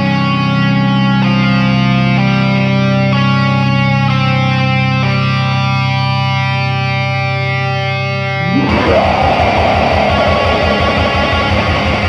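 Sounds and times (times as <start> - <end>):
black metal band playing: 8.3 - 12.0
distorted guitar chord ringing: 8.3 - 12.0.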